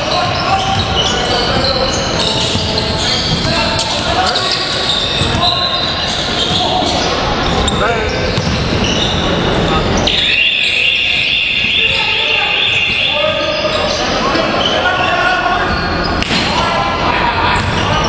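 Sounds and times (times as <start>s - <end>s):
sneaker squeaks on court: 0.0s - 16.5s
players' voices echoing: 0.0s - 18.0s
basketball bouncing on hardwood floor: 8.4s - 8.8s.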